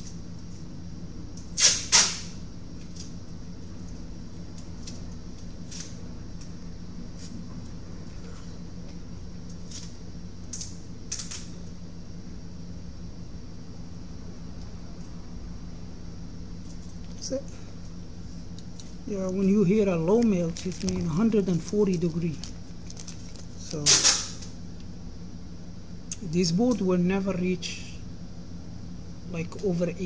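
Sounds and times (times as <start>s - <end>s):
steady low hum: 0.0s - 30.0s.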